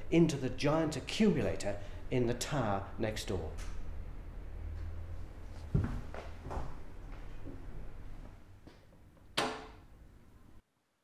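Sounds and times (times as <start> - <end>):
soft handling knocks: 5.5 - 7.6.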